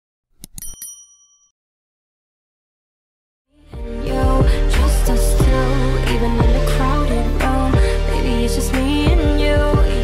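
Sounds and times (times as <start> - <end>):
bright bell ding: 0.5 - 1.5.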